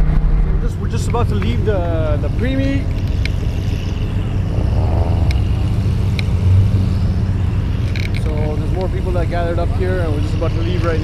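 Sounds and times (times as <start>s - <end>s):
car rumble: 0.0s - 11.0s
distant voices: 0.0s - 11.0s
faint clicks: 5.2s - 6.4s.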